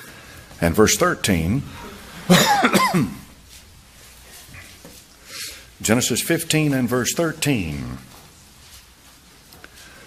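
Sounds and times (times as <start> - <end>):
man coughing: 1.7 - 3.3.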